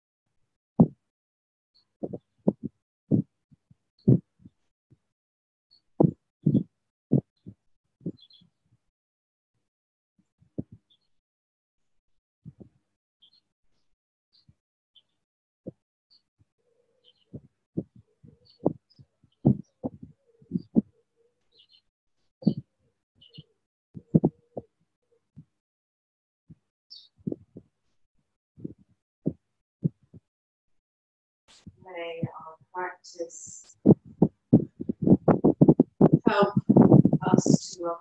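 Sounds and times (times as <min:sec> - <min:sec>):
faint bird chirps: 0:08.1 - 0:08.5, 0:13.2 - 0:13.5, 0:16.1 - 0:23.6, 0:26.9 - 0:27.4
dull low thumps: 0:19.4 - 0:20.9, 0:24.0 - 0:24.4, 0:33.8 - 0:37.6.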